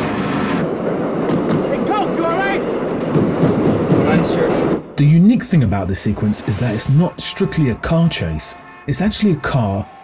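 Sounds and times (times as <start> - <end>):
subway train rumbling on tracks: 0.0 - 10.0.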